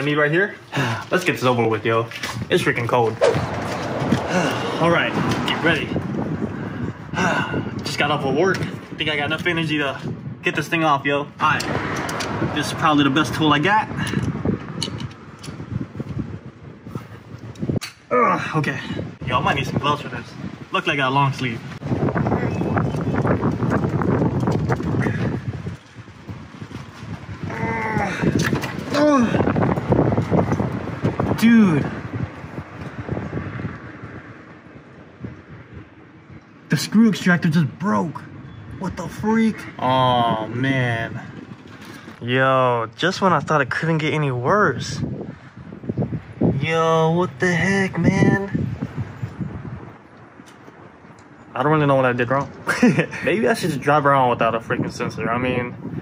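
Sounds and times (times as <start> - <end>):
wind rumbling on microphone: 0.0 - 56.0
man grunting with effort: 4.1 - 4.9, 7.1 - 7.7, 27.5 - 29.6.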